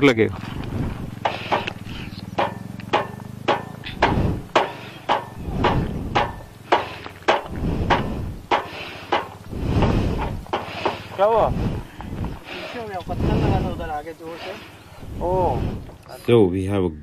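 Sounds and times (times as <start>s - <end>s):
low engine hum: 0.0s - 17.0s
hammer knocking on wheel: 1.2s - 9.5s, 10.2s - 11.4s.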